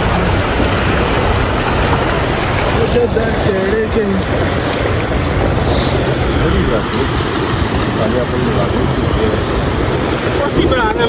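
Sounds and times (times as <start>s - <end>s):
river rushing over stones: 0.0s - 11.0s.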